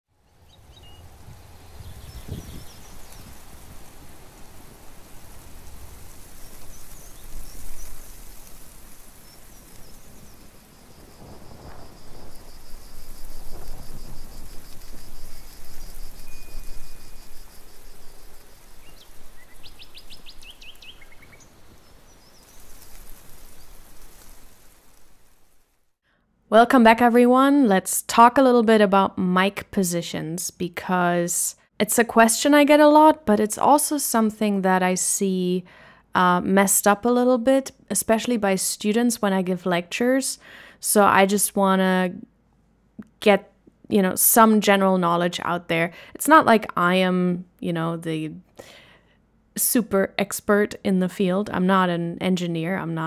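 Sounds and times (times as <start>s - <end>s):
small birds chirping: 0.2s - 4.0s, 5.0s - 24.0s
wind gusting on microphone: 0.4s - 25.0s.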